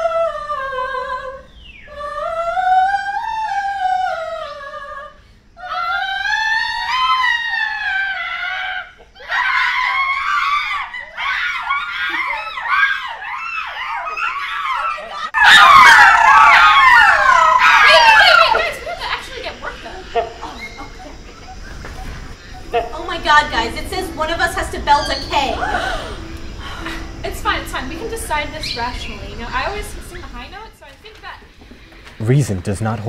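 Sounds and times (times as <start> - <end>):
women singing high notes: 0.0 - 11.2
high whoops and squeals: 5.6 - 19.8
women screaming: 5.6 - 21.4, 22.6 - 30.7.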